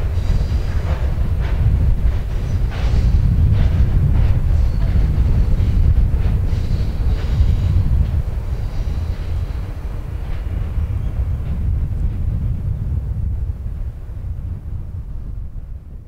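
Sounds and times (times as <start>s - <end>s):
train wagons rumbling on track: 0.0s - 16.0s.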